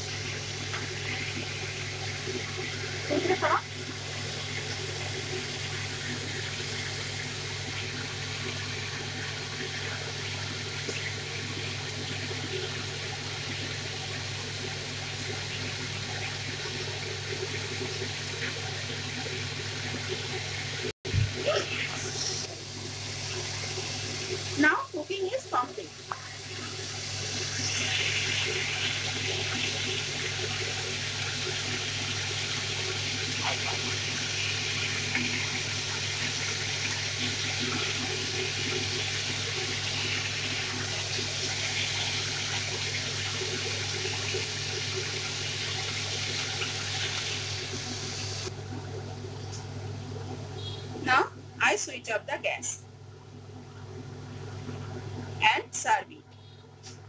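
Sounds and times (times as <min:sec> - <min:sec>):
food sizzling in oil: 0:20.2 - 0:48.5.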